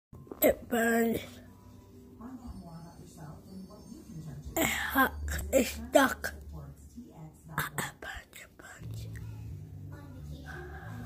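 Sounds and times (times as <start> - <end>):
girl whispering: 7.6 - 9.4.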